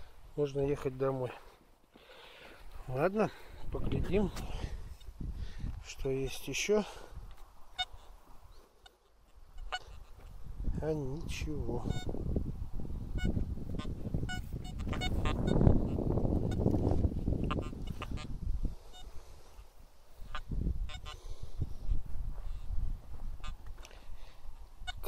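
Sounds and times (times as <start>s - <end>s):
metal detector signal tones: 8.8s - 10.2s, 11.8s - 12.2s, 13.1s - 16.8s, 17.4s - 18.3s, 18.9s - 19.1s, 20.3s - 21.2s.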